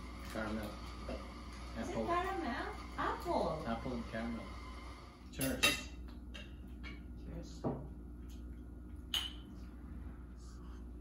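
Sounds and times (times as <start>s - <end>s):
tableware clinking: 5.4s - 7.1s, 9.1s - 9.6s.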